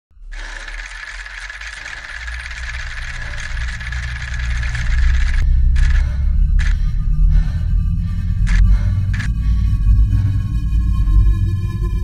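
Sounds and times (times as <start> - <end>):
dense rattling noise: 0.3 - 9.6
low rumble: 1.9 - 12.0.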